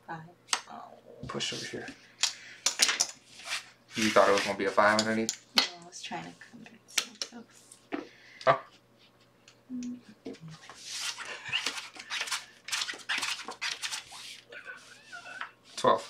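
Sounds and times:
cards sliding across felt: 3.3 - 4.8.

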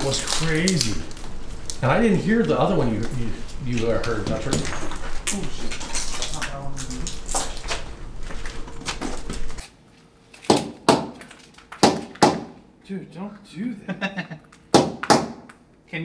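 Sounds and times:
people walking: 0.0 - 12.1
sharp knocks: 10.4 - 11.2, 11.8 - 12.6, 14.7 - 15.5.

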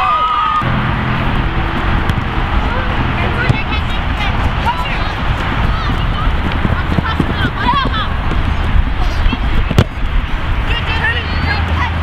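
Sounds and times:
distant shouts: 0.0 - 12.0
wind rumbling on microphone: 0.6 - 12.0
dull thumps: 3.4 - 8.5.

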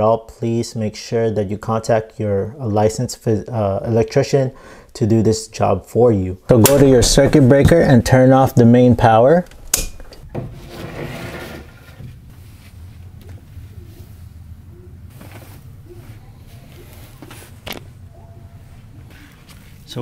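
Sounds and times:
rustling handling noise: 9.4 - 20.0.

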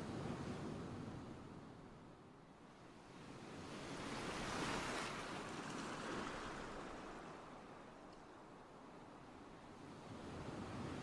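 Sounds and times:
wave washing in and back: 0.0 - 11.0.

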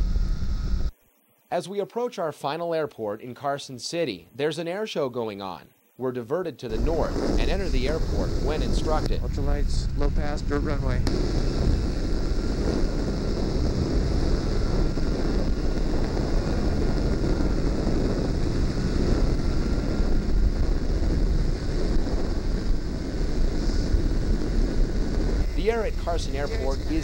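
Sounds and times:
pusher engine running: 6.7 - 27.0
wind rushing over microphone: 6.7 - 27.0.

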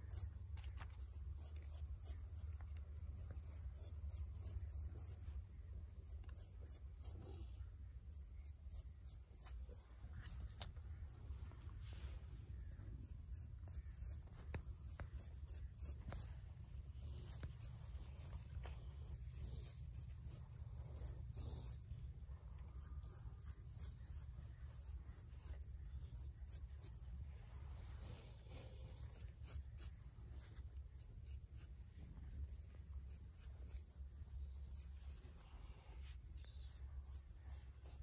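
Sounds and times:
razor scraping hair: 13.0 - 16.3, 16.9 - 21.9, 28.1 - 30.0, 30.6 - 31.8, 36.1 - 38.0
razor scraping wet scalp: 13.0 - 16.3.

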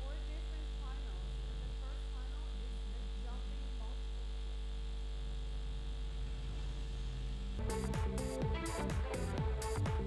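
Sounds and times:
low electrical hum with buzz: 0.0 - 10.0.

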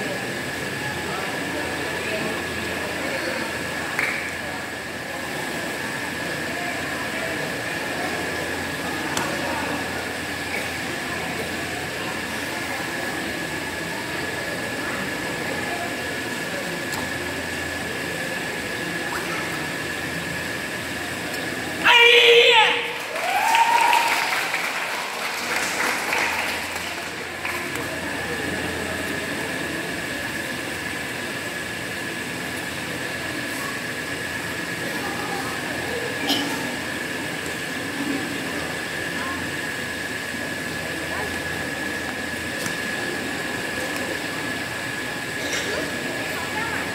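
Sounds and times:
crowd murmur: 0.0 - 46.9
louder voices: 21.7 - 27.4
person shouting: 21.8 - 22.9.

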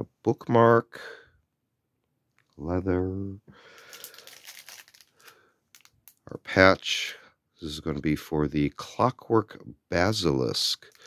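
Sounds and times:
plastic bag crinkling: 3.7 - 6.3.

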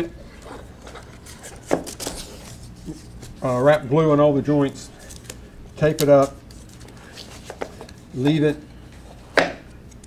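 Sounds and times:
faint handling sounds: 4.6 - 10.0.

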